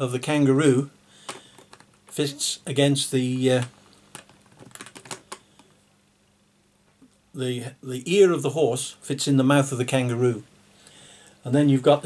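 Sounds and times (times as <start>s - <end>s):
puzzle pieces clicking: 3.4s - 5.7s.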